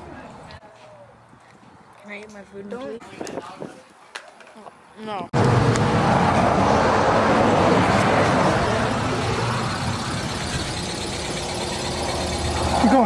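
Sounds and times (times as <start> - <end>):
steady traffic rumble: 0.0 - 13.0
vehicle passing close by: 5.4 - 13.0.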